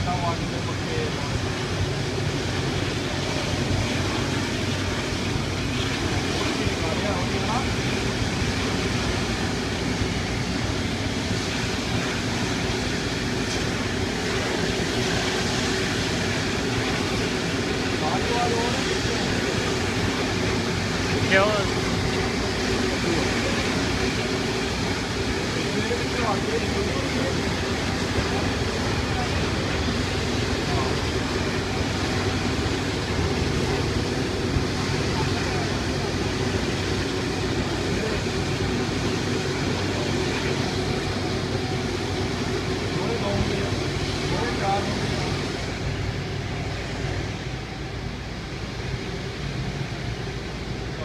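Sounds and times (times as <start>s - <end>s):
jet engine roar: 0.0s - 51.0s.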